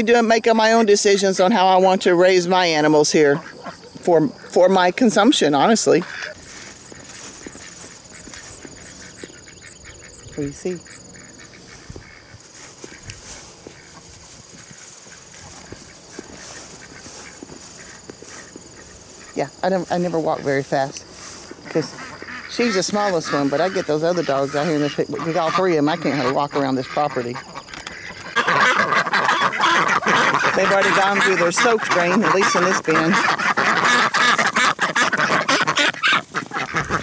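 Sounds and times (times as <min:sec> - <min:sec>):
ducks quacking loudly: 0:00.0 - 0:37.0
footsteps swishing through grass: 0:06.0 - 0:09.5, 0:11.4 - 0:24.9.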